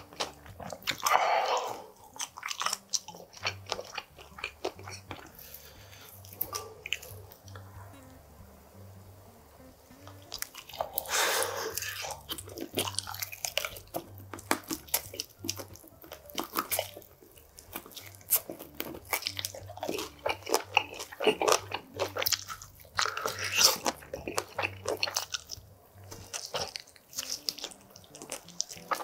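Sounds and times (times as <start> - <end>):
crunchy chewing of chicken wings: 0.0 - 7.6, 10.1 - 29.0.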